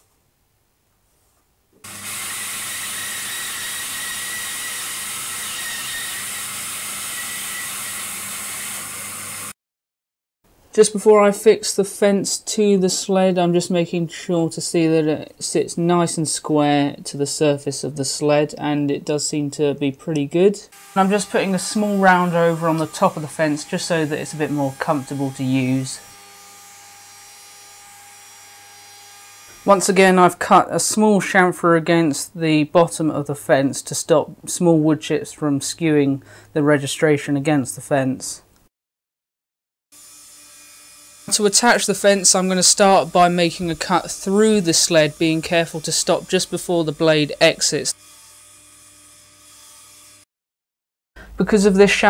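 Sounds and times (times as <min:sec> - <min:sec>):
bandsaw cutting wood: 0:01.8 - 0:09.6, 0:20.7 - 0:30.2, 0:40.0 - 0:50.3
router whirring hum: 0:01.9 - 0:09.6, 0:20.7 - 0:29.8.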